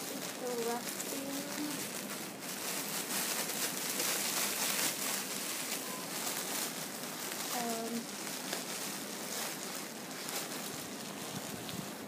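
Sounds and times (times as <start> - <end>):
plastic bag and netting rustling: 0.0 - 12.0.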